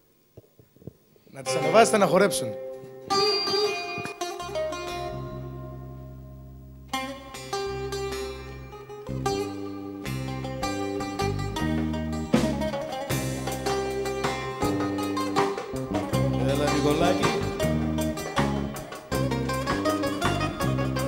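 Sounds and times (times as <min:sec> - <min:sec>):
bouzouki picking a melody: 0:01.4 - 0:21.0
bass: 0:04.2 - 0:21.0.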